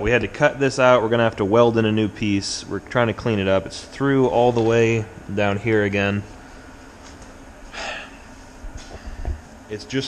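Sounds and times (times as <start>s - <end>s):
man breathing out: 7.7s - 8.2s.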